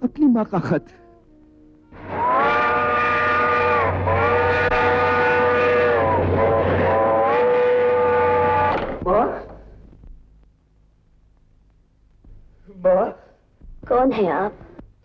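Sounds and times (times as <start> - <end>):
train horn blasts: 1.9 - 9.4
train rumbling: 2.0 - 9.6.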